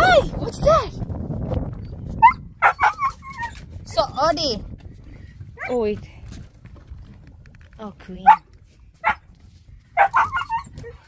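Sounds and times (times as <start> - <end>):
low rumble: 0.0 - 11.0
dog whining: 2.2 - 3.6, 10.0 - 11.0
dog yipping: 2.2 - 3.6, 9.0 - 9.2, 10.0 - 11.0.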